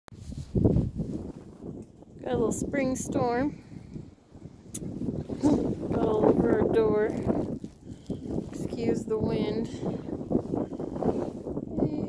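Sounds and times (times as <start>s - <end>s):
wind buffeting microphone: 0.1s - 12.0s.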